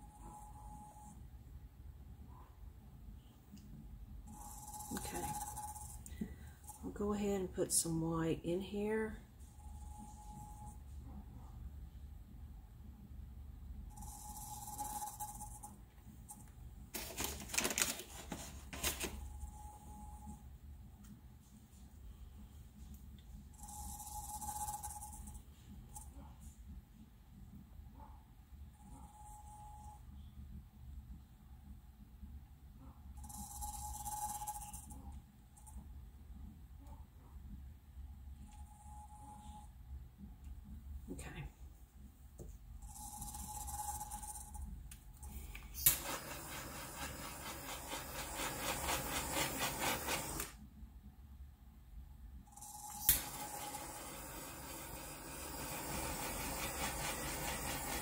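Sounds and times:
cup turner motor hum: 4.3s - 7.0s, 45.5s - 50.6s, 52.5s - 58.0s.

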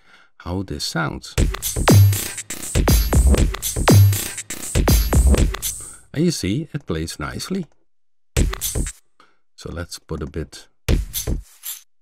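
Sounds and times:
kick drums dropping in pitch: 1.4s - 5.7s, 8.4s - 8.9s
sliced drum loop: 1.4s - 5.9s, 8.4s - 9.0s
drum machine groove: 1.4s - 6.0s, 8.4s - 9.0s, 10.9s - 11.6s
open hi-hats: 1.4s - 6.0s, 8.4s - 9.0s.

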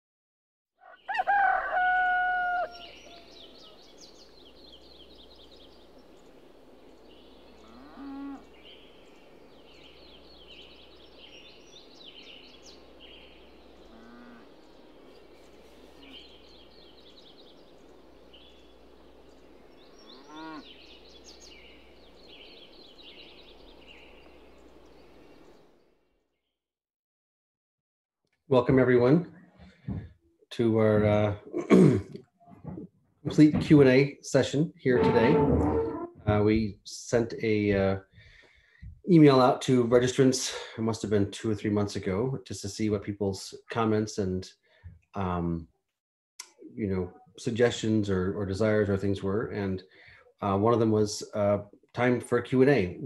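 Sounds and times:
rooster crowing: 0.8s - 3.8s
faint low bird calls: 0.8s - 25.7s, 34.9s - 36.7s
small birds chirping: 0.8s - 26.0s.

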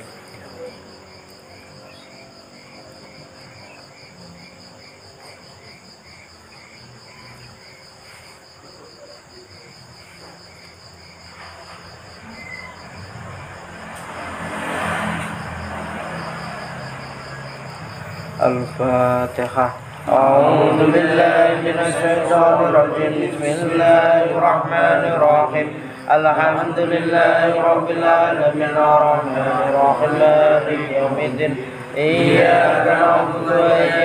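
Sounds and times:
broad rush of noise: 0.0s - 34.0s
crickets chirping: 0.0s - 34.0s.

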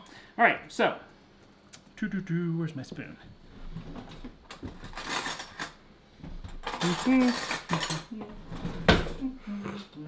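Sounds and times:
metal utensils clattering: 4.8s - 5.8s, 6.5s - 9.2s.

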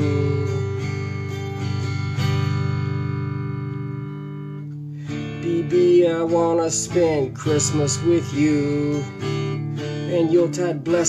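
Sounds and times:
electric guitar strumming chords: 0.0s - 11.0s.

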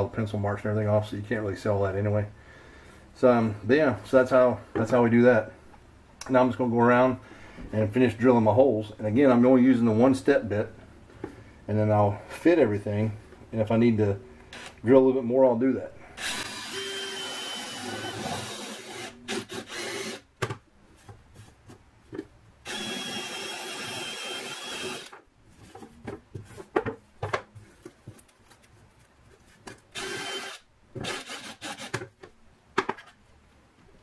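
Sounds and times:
cordless drill cutting wood: 16.2s - 20.2s, 22.6s - 25.2s, 30.0s - 31.9s.

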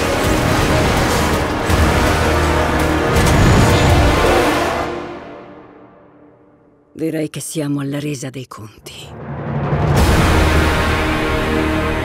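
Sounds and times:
dense trailer music: 0.0s - 6.9s, 9.1s - 12.0s.

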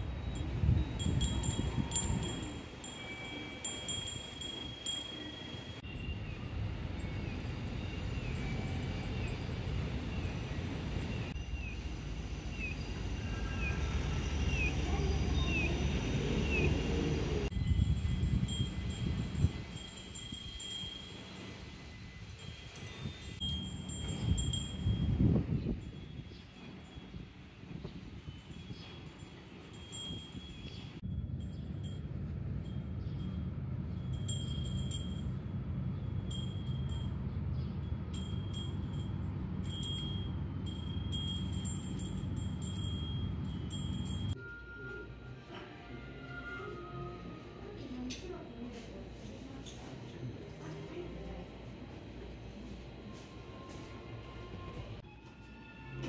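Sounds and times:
chimes ringing: 0.0s - 9.8s, 17.5s - 27.4s, 28.0s - 45.4s
low steady rumble: 29.8s - 44.4s.

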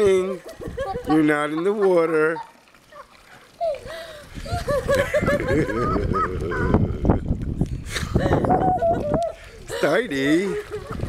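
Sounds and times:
woman laughing: 0.3s - 7.0s, 7.9s - 11.0s.

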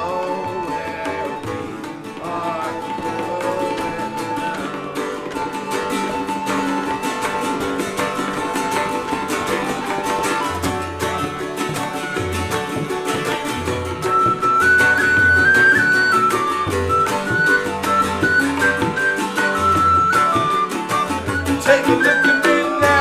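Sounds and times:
strummed cittern: 0.0s - 23.0s
tabla: 0.0s - 23.0s
whistle melody: 2.6s - 23.0s.

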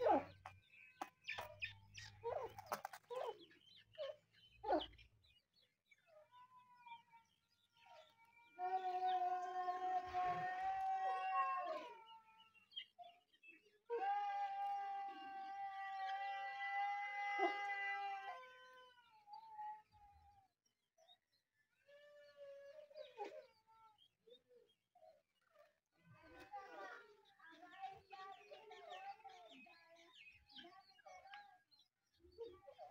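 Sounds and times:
long drawn-out animal cries: 7.8s - 12.8s, 13.9s - 20.3s.

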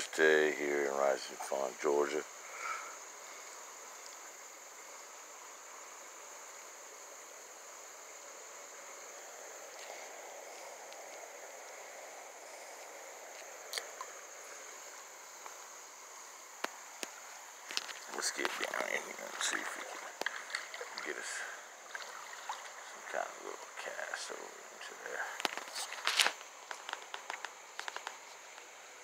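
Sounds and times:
creek rushing: 0.0s - 29.0s
high insect trill: 0.0s - 29.0s.

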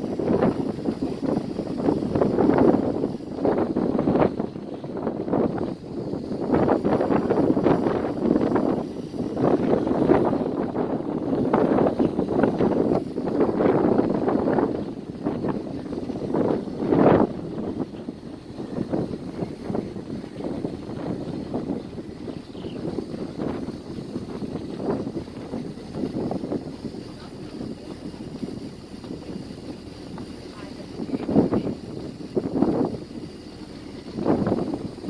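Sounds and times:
wind on microphone: 0.0s - 35.0s
people talking: 18.6s - 21.5s, 26.8s - 32.8s.

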